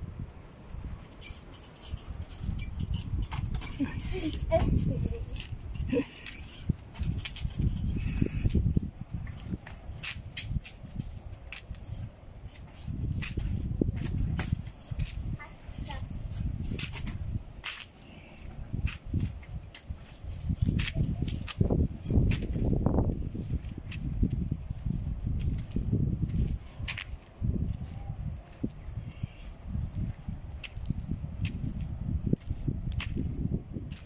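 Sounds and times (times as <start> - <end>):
wind buffeting microphone: 0.0 - 34.0
faint high-pitched squeaks: 1.1 - 8.8
footsteps on asphalt: 5.4 - 34.0.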